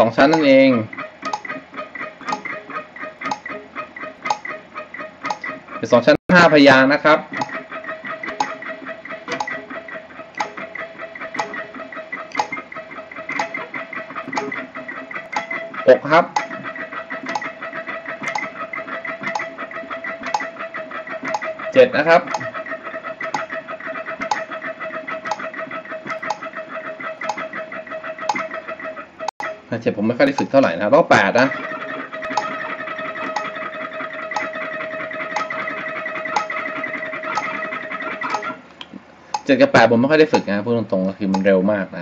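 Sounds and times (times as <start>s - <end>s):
metronome ticking: 0.0s - 41.7s
electric guitar fast picking: 7.3s - 38.7s.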